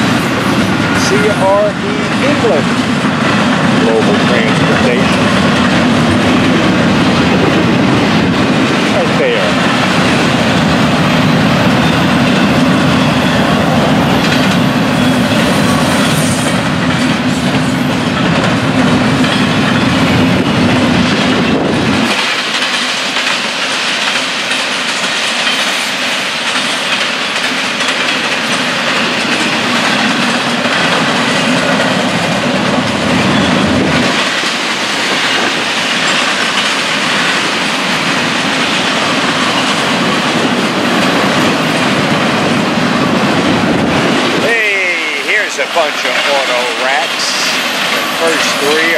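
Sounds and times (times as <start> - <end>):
heavy low rumble: 0.0 - 22.2
freight train rolling past: 0.0 - 48.9.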